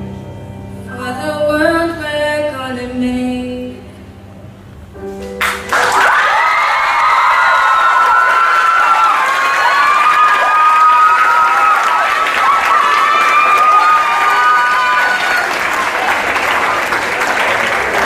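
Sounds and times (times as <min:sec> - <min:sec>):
audience applauding: 0:05.4 - 0:18.0.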